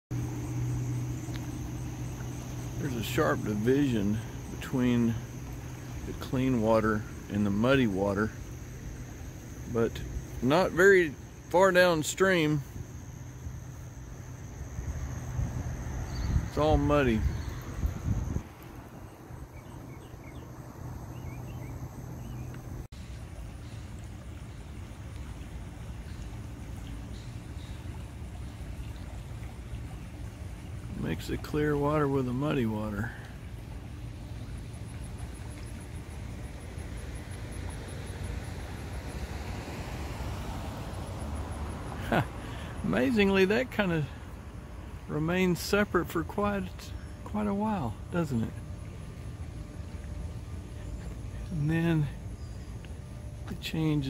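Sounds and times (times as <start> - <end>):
insects trilling: 0.1 - 54.0
outdoor background noise: 0.1 - 54.0
water flowing into channel: 0.1 - 54.0
faint bird chirps: 16.1 - 18.2, 50.4 - 53.8.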